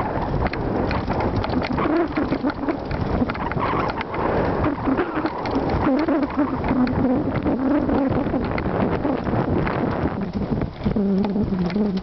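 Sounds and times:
bike clicking and rattling: 0:00.0 - 0:12.0
wind rushing over microphone: 0:00.0 - 0:12.0.

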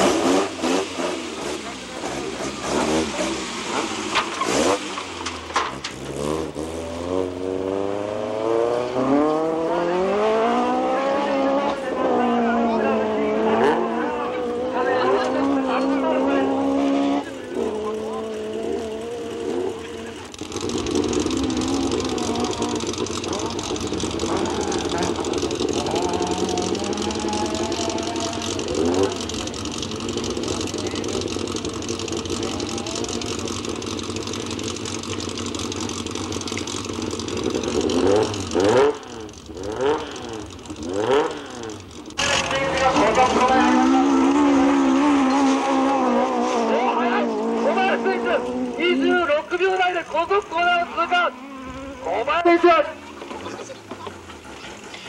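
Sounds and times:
car engines revving hard: 0:00.0 - 0:55.0.

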